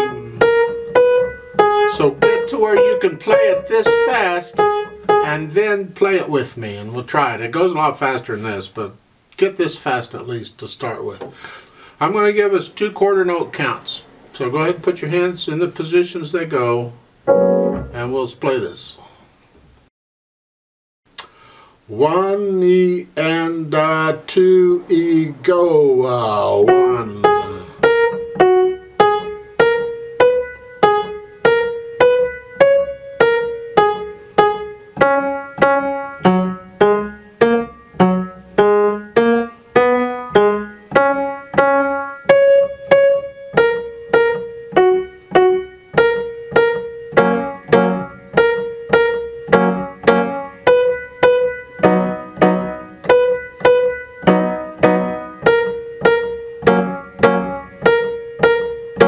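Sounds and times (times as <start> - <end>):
grand piano playing slow notes: 0.0 - 5.4, 17.2 - 18.0, 26.5 - 59.0.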